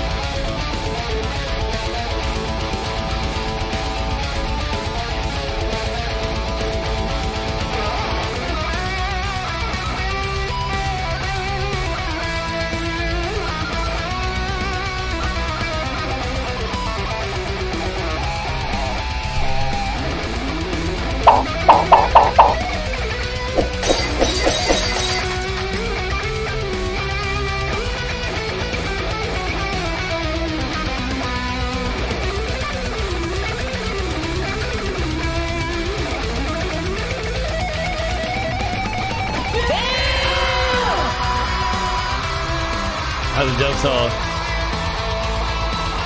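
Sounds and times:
heavy metal music: 0.0s - 46.0s
sharp staccato hits: 21.3s - 22.7s.

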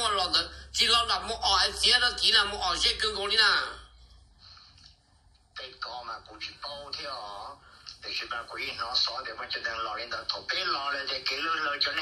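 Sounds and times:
person telling a story: 0.0s - 3.8s.

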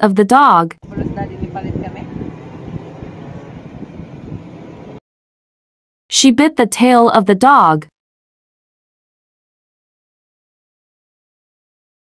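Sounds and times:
wind buffeting microphone: 0.8s - 5.0s.

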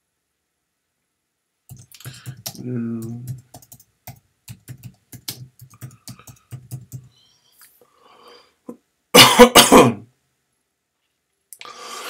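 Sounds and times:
man clearing throat: 9.2s - 10.1s.

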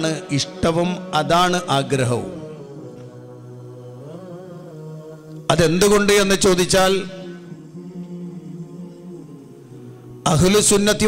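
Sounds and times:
man's amplified voice: 0.0s - 2.6s, 5.5s - 7.4s, 10.3s - 11.0s.

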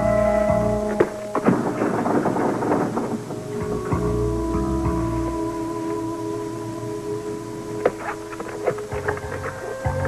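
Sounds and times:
crackling thunder roll: 0.0s - 8.9s
background music: 0.0s - 10.0s.

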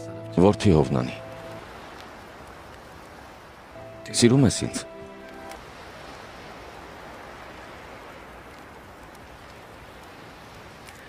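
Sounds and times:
soft outdoor background ambience: 0.0s - 11.0s.

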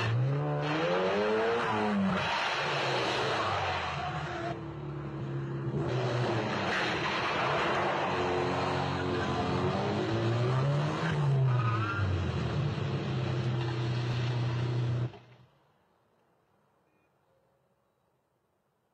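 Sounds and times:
car engines running hard: 0.0s - 15.4s
tyre and road noise: 0.0s - 15.9s.

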